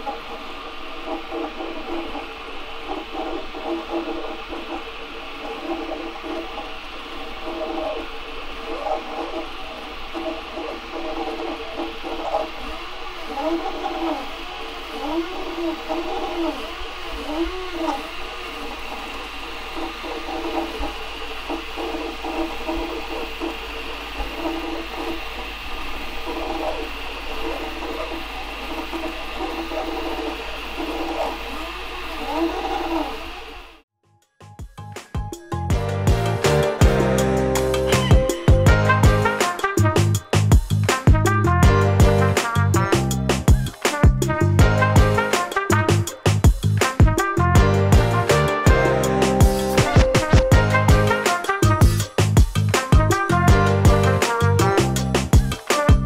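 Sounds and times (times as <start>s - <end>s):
cooling fans hissing: 0.0s - 33.8s, 35.0s - 56.0s
stepper motors whining: 0.0s - 33.8s.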